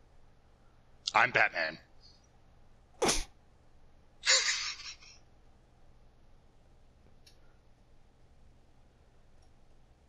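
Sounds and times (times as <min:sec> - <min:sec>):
person sneezing: 0:03.0 - 0:03.3.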